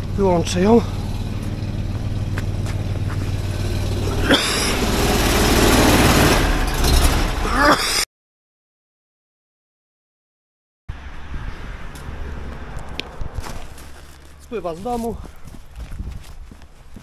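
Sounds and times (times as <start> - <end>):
high-pressure pump running: 2.6 - 6.4
loud rushing noise: 3.4 - 7.4.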